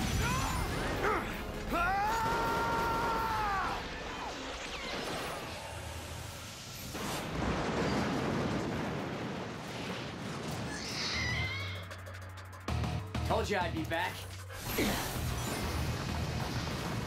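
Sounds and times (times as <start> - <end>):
man screaming: 1.7 - 3.8
explosion with low tail: 7.0 - 10.8.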